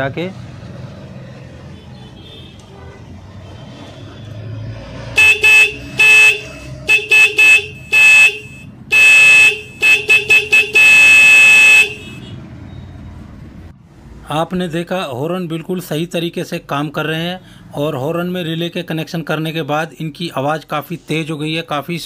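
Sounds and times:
motorcycle horns tooting: 5.2 - 12.4.

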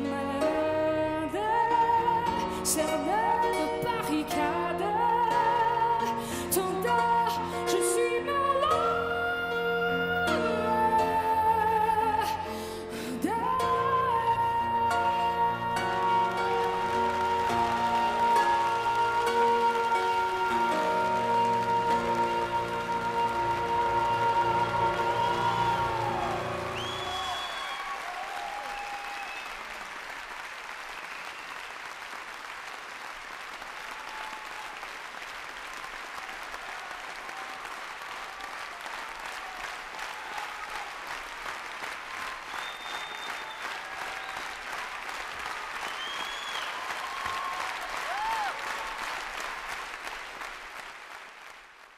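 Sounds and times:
audience applauding: 14.9 - 51.9
audience cheering: 15.8 - 32.4, 33.4 - 50.6.

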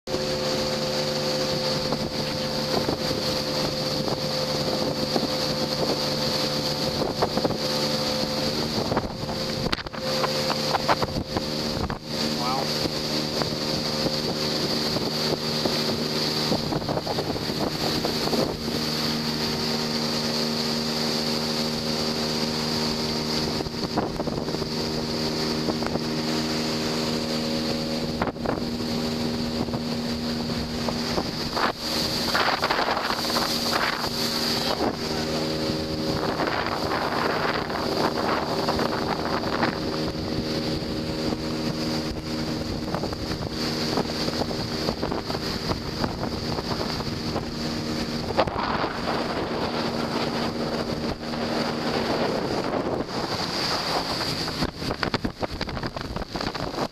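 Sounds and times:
motorboat engine running: 0.0 - 56.9
water rushing along hull: 0.0 - 56.9
wind on microphone: 0.1 - 56.9.

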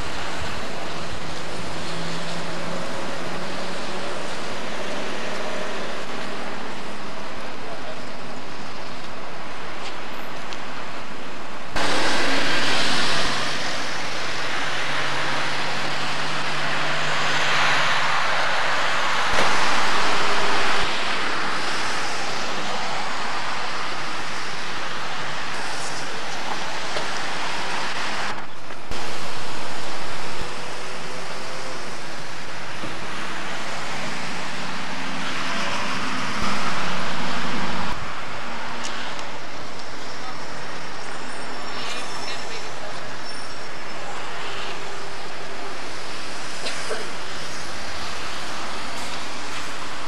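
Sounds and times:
traffic noise: 0.0 - 50.0.

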